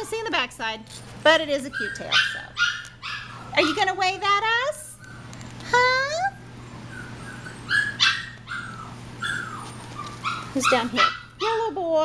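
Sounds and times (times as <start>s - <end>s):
puppies yipping: 1.5s - 5.4s, 6.3s - 11.7s.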